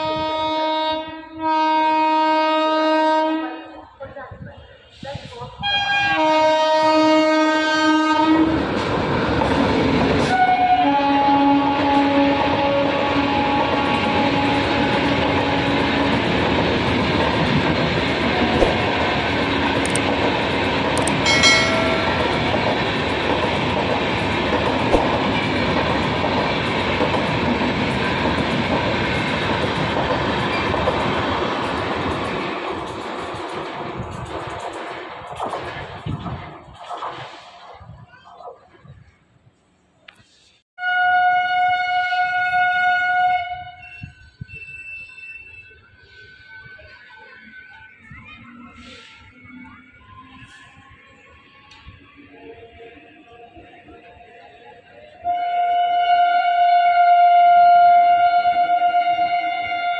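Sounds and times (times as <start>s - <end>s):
train horn blasts: 0.0s - 3.8s, 5.6s - 8.6s, 10.2s - 16.1s, 21.2s - 22.7s, 40.8s - 44.2s, 55.2s - 59.9s
train coaches rumbling on rails: 4.0s - 39.2s.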